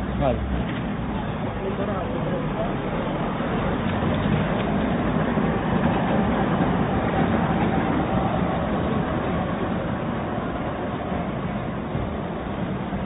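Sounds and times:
car engine and tyre rumble: 0.0 - 13.0.

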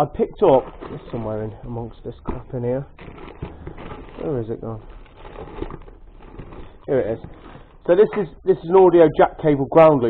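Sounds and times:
rustling cloth and cables: 0.0 - 8.5.

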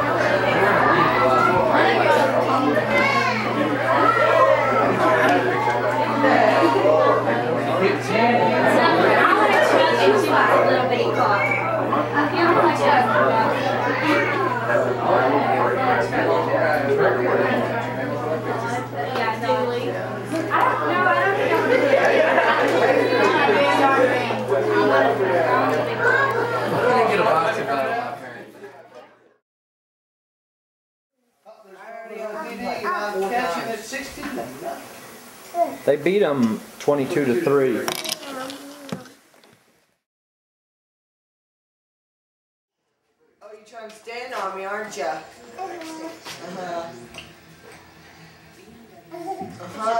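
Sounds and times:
overlapping adult chatter: 0.0 - 29.4, 31.5 - 39.2, 43.4 - 49.9
child's voice: 2.9 - 5.0, 13.7 - 14.7, 35.5 - 35.8, 38.0 - 39.2, 45.6 - 46.4, 49.0 - 49.8.

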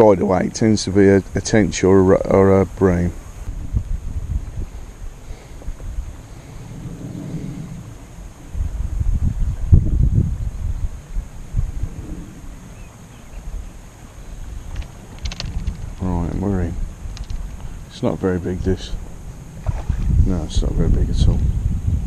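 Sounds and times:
wind buffeting microphone: 0.0 - 22.0
faint clicks: 14.7 - 16.1, 17.0 - 17.7.

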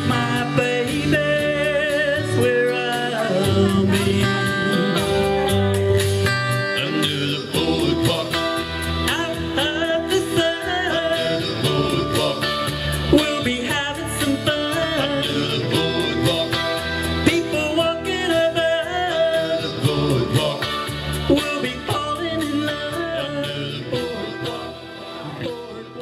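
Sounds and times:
electric guitar playing: 0.0 - 26.0
person singing: 0.0 - 26.0.

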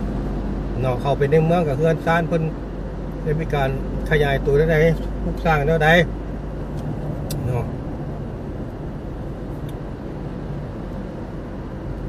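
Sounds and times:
car engine and tyres drone: 0.0 - 12.0.

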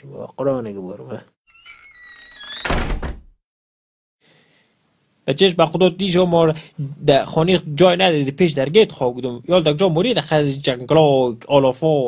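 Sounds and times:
wooden door squeaking on hinges: 1.5 - 3.3
door slamming shut: 2.3 - 3.4.

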